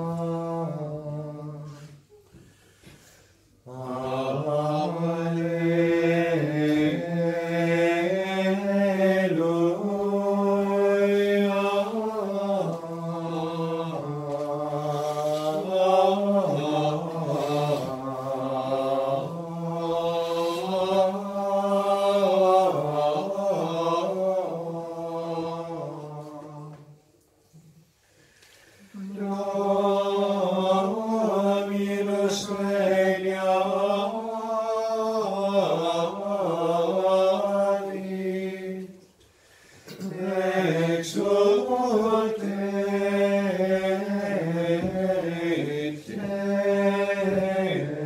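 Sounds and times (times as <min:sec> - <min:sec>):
men's voices chanting: 0:40.0 - 0:48.0.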